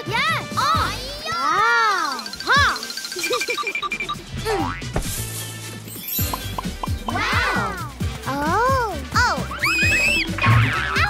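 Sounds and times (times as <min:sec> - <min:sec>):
playful cartoon music: 0:00.0 - 0:11.0
cartoon character calling: 0:09.4 - 0:11.0.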